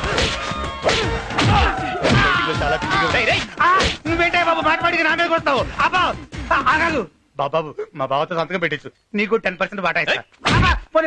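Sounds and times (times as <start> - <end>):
punch and kick whacks: 0.0 - 2.5, 3.2 - 4.1, 10.4 - 10.8.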